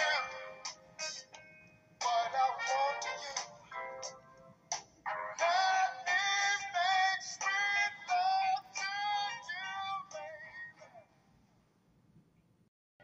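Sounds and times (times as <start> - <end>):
music with high sung vocal: 0.0 - 11.2.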